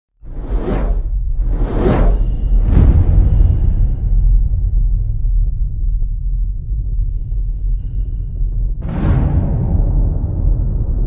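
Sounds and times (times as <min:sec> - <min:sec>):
rising whooshes: 0:00.2 - 0:04.5
deep low rumble: 0:00.2 - 0:11.0.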